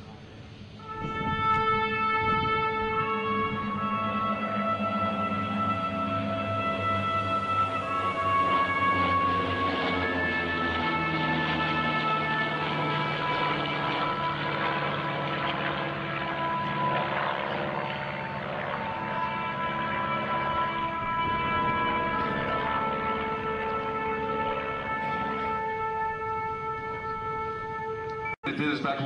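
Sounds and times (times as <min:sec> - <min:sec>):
propeller aircraft passing overhead: 0:00.0 - 0:29.0
music with long held notes: 0:00.2 - 0:28.4.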